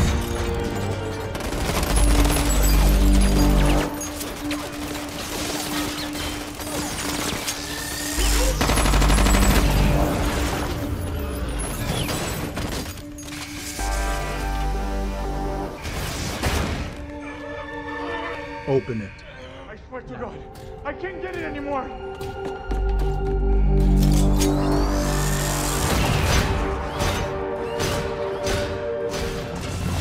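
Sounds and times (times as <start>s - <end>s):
dramatic orchestral score: 0.0s - 30.0s
rapid automatic rifle fire: 4.5s - 10.0s.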